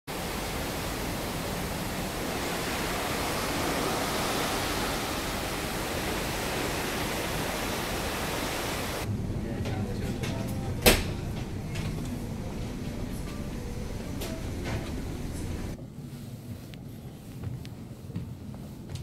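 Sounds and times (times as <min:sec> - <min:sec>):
wind and water rushing past ship: 0:00.1 - 0:09.9.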